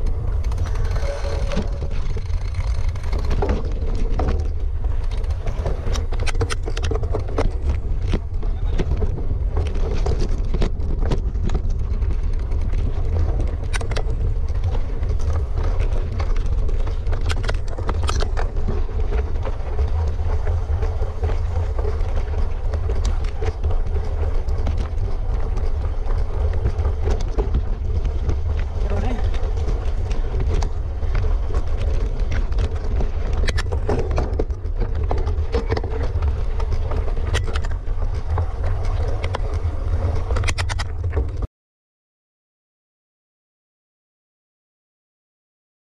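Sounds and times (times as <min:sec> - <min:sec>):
bike knocks and rattles: 0:00.0 - 0:41.5
wind buffeting camera: 0:00.0 - 0:41.5.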